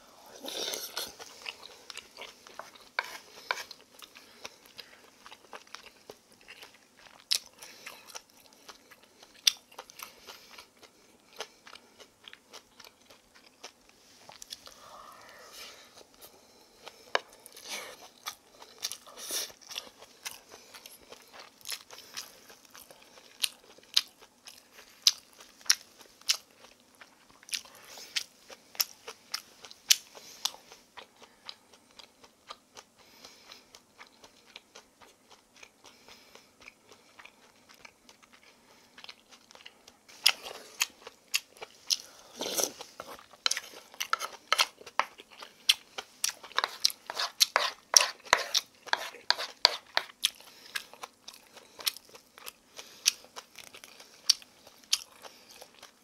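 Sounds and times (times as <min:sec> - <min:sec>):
wooden spoon in wooden bowl: 0:02.6 - 0:03.8, 0:46.6 - 0:50.1
close chewing with wet clicks: 0:42.7 - 0:56.0.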